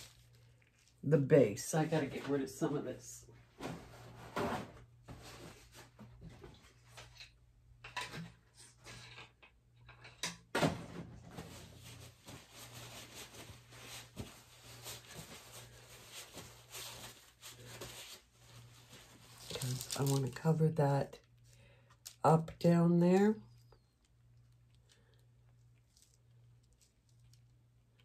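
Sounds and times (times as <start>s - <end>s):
objects knocking and rustling: 3.5s - 20.0s.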